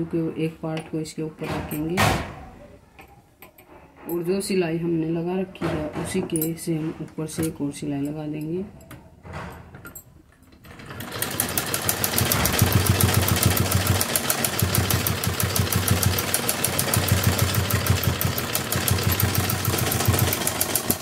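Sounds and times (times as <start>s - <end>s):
sewing machine running: 10.6s - 21.0s.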